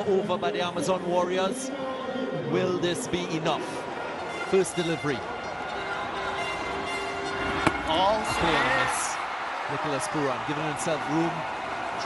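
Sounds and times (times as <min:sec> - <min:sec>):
stadium background noise: 0:00.0 - 0:12.0.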